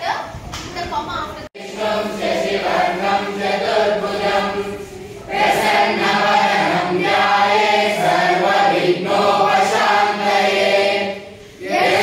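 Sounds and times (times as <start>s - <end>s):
schoolboys chanting a prayer: 1.6s - 12.0s.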